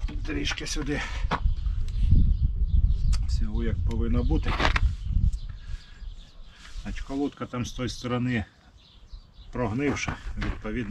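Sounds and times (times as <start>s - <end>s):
wind rumble on microphone: 0.0s - 6.9s.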